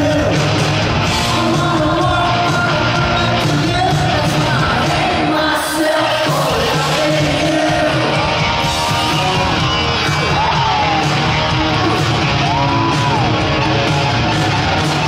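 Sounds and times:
drums: 0.0 - 15.0
electric guitars: 0.0 - 15.0
woman singing lead: 1.2 - 8.9.

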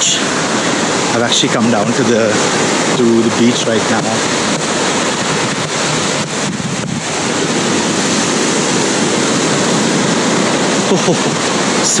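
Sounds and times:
surf washing onto beach: 0.0 - 12.0
wind buffeting microphone: 0.0 - 12.0.

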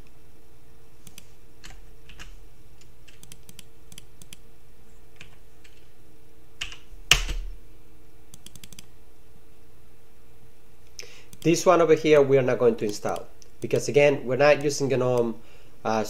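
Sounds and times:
faint steady hum: 0.0 - 16.0
keyboard keystrokes: 8.3 - 8.9.

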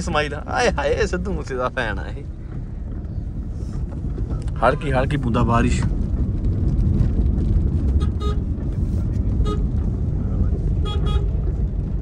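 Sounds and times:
road and engine rumble in car: 0.0 - 12.0
vehicle horn toots: 7.9 - 8.5, 9.4 - 9.8, 10.8 - 11.4.

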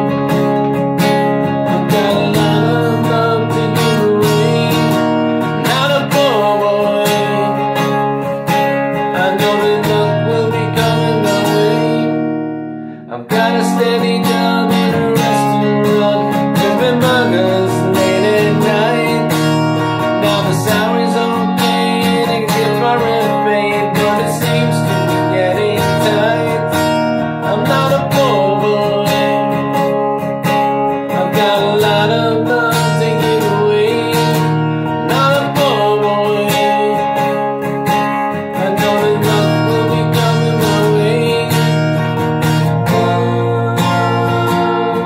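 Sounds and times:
acoustic guitar strumming chords: 0.0 - 45.0.

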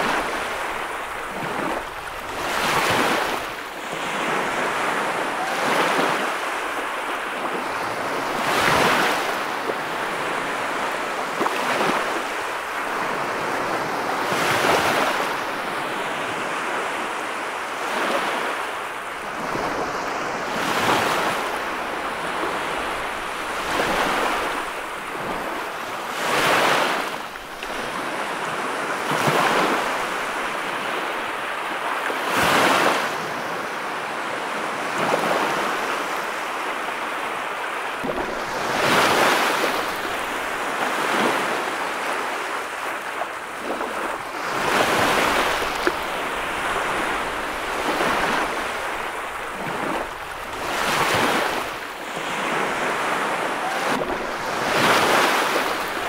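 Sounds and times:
ocean surf breaking: 0.0 - 56.0.

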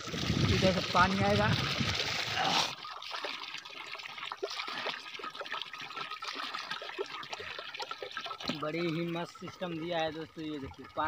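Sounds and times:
small drips: 0.0 - 11.0
water running from tap: 0.0 - 11.0.

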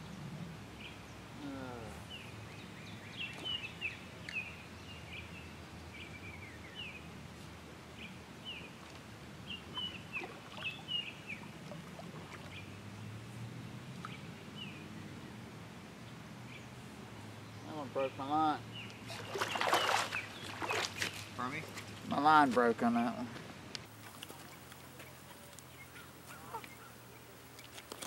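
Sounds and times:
small birds chirping: 0.8 - 7.1, 8.0 - 11.6, 16.0 - 22.2, 23.8 - 28.0.

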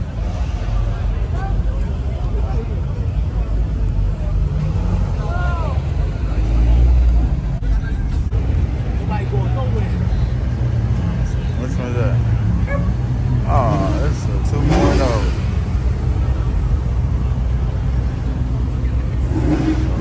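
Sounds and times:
car engine rumble: 0.0 - 20.0
people chattering: 0.0 - 20.0.

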